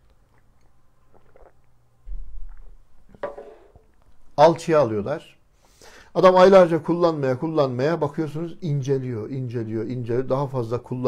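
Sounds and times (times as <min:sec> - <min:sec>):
faint swallowing and mouth sounds: 0:00.0 - 0:03.2
man sipping water: 0:00.0 - 0:04.1
short breath: 0:05.5 - 0:06.1.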